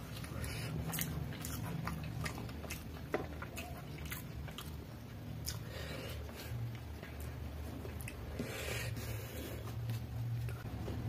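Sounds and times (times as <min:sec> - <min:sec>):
chewing noodles: 0:00.0 - 0:10.7
low steady hum: 0:00.0 - 0:11.0.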